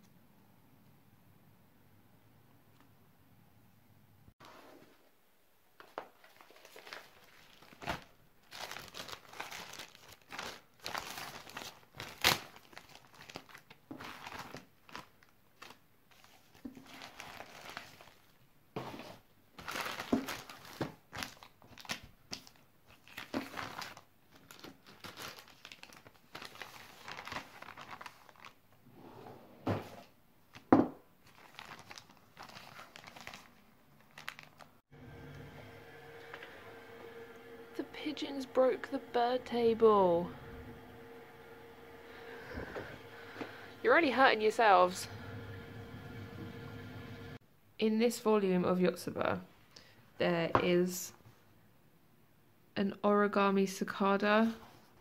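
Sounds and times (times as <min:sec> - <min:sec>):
plastic bag crinkling and rustling: 0:05.8 - 0:28.7, 0:30.5 - 0:34.8
plastic bag snapping: 0:06.4 - 0:15.1.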